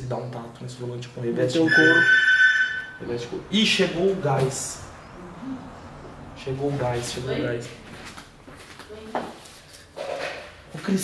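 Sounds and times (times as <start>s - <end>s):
man speaking: 0.0s - 2.2s, 3.0s - 5.0s, 6.4s - 7.8s.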